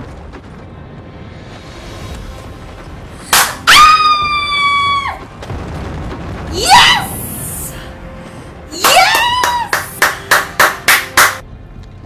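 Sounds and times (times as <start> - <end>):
hands clapping: 3.3 - 3.6, 8.8 - 11.4
woman squealing excitedly: 3.7 - 5.2.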